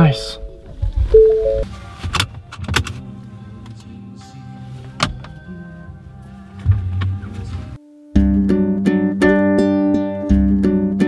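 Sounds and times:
car electronic chime: 0:00.0 - 0:01.6
faint music: 0:00.0 - 0:11.0.

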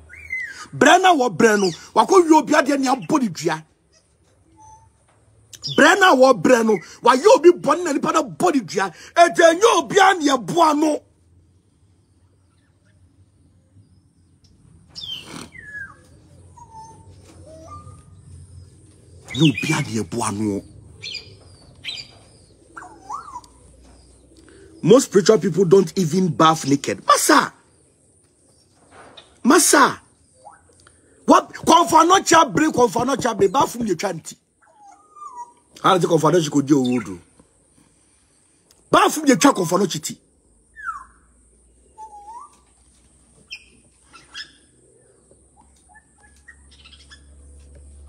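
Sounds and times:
birds chirping: 0:00.0 - 0:48.0.

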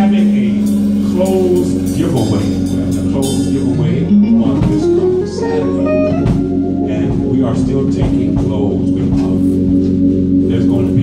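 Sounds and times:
instrumental guitar bass and drums: 0:00.0 - 0:11.0.

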